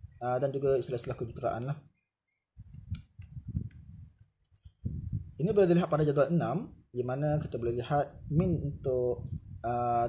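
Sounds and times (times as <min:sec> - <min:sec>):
soft clicks: 0:02.6 - 0:04.8.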